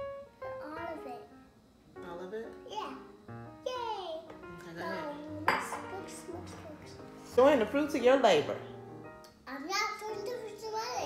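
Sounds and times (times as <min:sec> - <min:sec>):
background music: 0:00.0 - 0:10.9.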